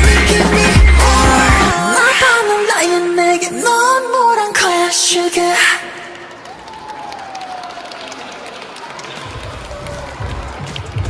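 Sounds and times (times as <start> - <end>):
pop dance track: 0.0 - 6.1
audience cheering and clapping: 6.0 - 11.0.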